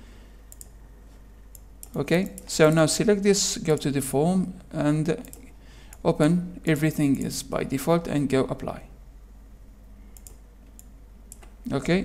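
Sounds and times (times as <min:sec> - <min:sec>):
low steady hum: 0:00.0 - 0:12.0
faint computer mouse clicks: 0:00.5 - 0:00.8, 0:10.1 - 0:11.6.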